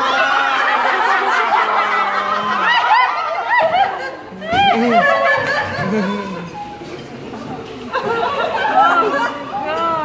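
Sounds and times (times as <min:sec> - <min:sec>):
group laughing and chattering: 0:00.0 - 0:10.0.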